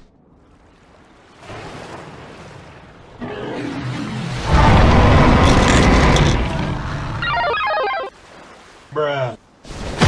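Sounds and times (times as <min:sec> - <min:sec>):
loud rough rumble: 0:04.5 - 0:07.2
phone ringtone beeping: 0:07.2 - 0:08.1.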